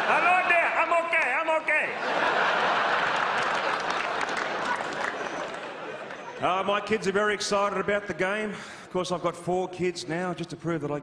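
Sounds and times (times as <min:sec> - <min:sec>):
audience applauding: 0:02.1 - 0:06.4.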